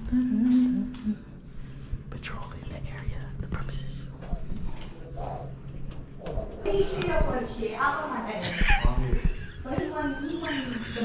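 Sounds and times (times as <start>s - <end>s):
steady low hum: 0.0s - 11.0s
soft whispering: 2.0s - 5.6s.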